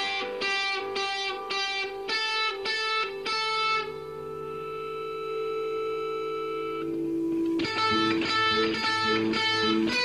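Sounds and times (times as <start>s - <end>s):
held guitar note ringing: 0.0s - 10.0s
strummed electric guitar chords: 0.0s - 10.0s.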